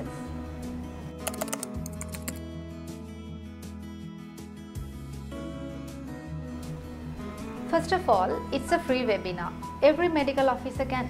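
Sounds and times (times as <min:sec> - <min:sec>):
background music: 0:00.0 - 0:11.0
computer keyboard typing clicks: 0:01.2 - 0:02.4.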